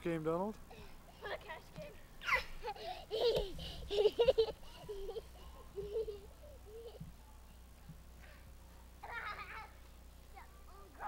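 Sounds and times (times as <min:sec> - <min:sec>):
young child laughing and babbling: 0:01.2 - 0:07.1, 0:09.0 - 0:09.8.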